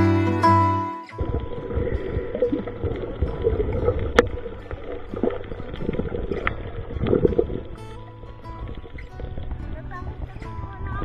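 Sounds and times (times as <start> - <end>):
underwater rushing rumble: 1.2 - 11.0.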